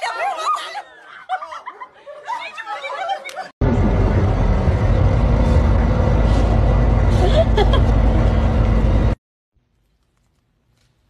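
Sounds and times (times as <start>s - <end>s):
bus engine rumble: 3.6s - 9.2s.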